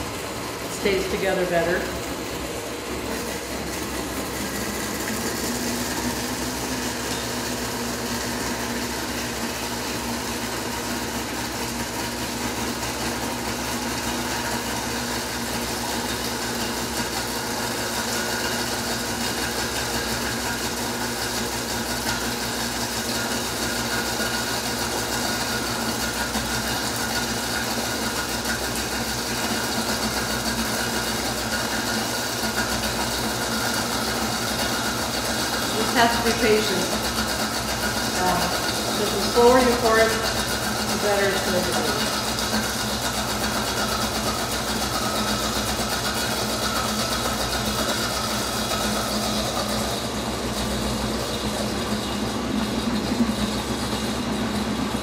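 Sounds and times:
blender motor running: 0:00.0 - 0:55.0.

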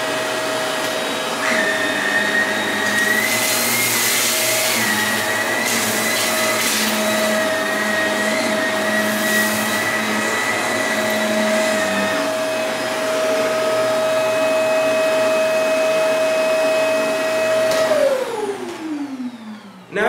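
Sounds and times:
vacuum cleaner running: 0:00.0 - 0:20.0
vacuum motor winding down: 0:00.0 - 0:20.0.

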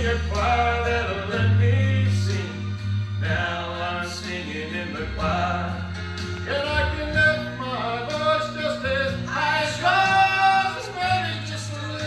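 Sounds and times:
instrumental accompaniment: 0:00.0 - 0:12.0
man singing gospel song: 0:00.0 - 0:12.0
steady bass line: 0:00.0 - 0:12.0.

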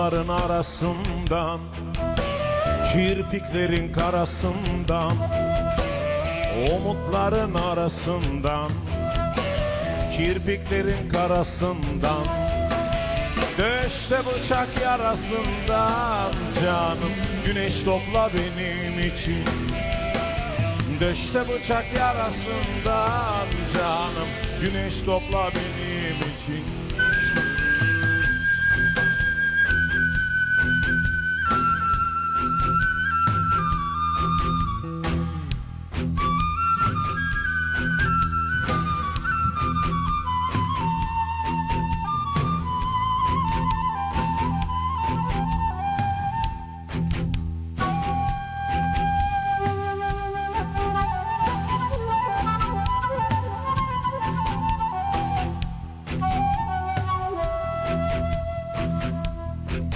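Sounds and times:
bass guitar: 0:00.0 - 0:59.9
drums: 0:00.0 - 0:59.9
flute melody: 0:00.0 - 0:59.9
folk-rock band backing: 0:00.0 - 0:59.9.

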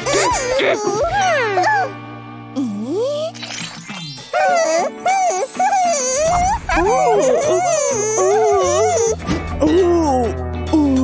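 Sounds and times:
background music: 0:00.0 - 0:11.0
high-pitched cartoon voice: 0:02.6 - 0:03.4, 0:04.4 - 0:11.0.

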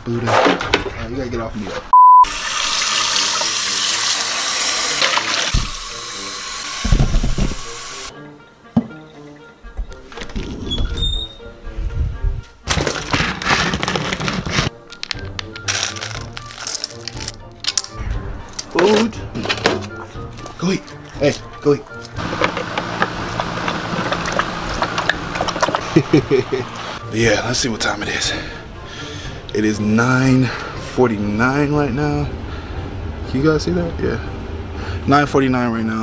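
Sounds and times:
faucet running into metal bowl: 0:02.2 - 0:08.1.

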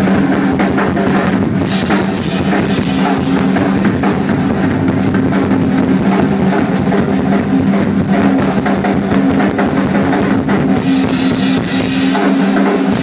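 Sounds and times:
fast drum roll on toms: 0:00.0 - 0:13.0.

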